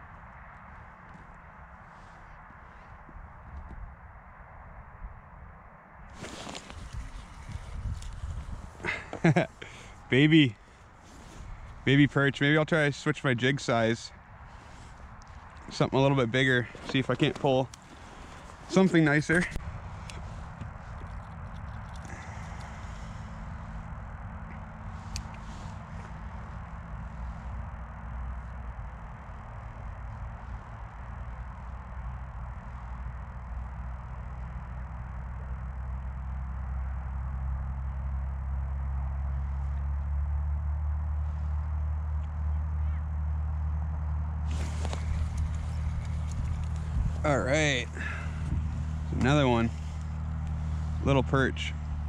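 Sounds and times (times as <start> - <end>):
low hum with held tones: 0.0 - 52.0.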